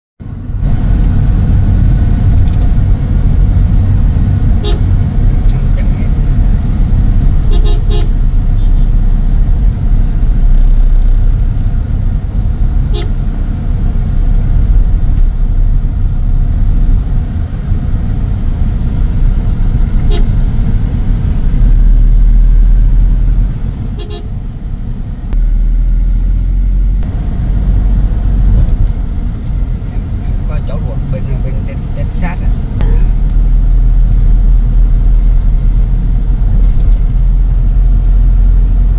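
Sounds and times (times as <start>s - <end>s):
car road and engine rumble: 0.2s - 38.9s
vehicle horn toots: 4.6s - 4.9s, 7.5s - 9.0s, 12.9s - 13.2s, 20.0s - 20.4s, 24.0s - 24.3s.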